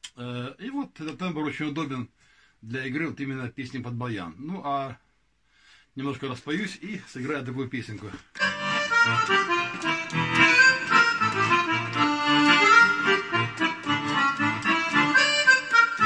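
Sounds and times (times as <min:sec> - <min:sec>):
button accordion playing: 0:08.4 - 0:16.0.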